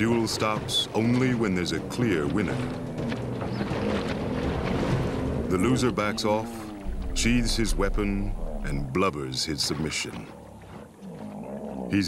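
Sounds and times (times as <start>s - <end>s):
water splashing and churning: 0.0s - 12.0s
low rumble: 6.6s - 9.7s.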